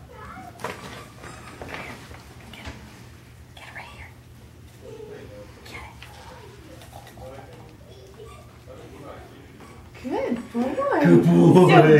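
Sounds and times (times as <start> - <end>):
steady low hum: 0.0 - 11.9
quiet indistinct speech: 3.6 - 11.9.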